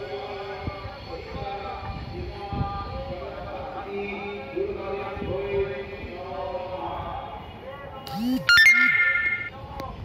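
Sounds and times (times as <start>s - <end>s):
high-pitched beep: 8.1s - 9.6s.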